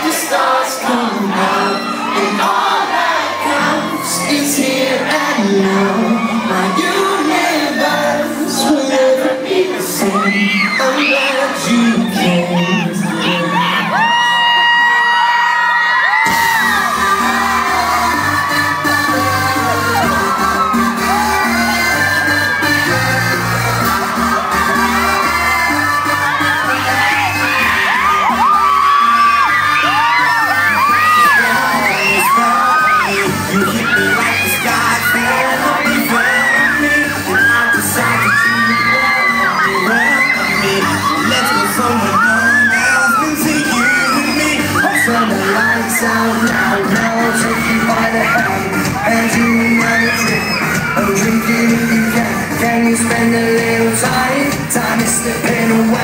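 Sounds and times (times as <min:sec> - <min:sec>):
live pop band with heavy beat: 0:00.0 - 0:15.2, 0:15.9 - 0:56.0
crowd of fans screaming: 0:00.0 - 0:56.0.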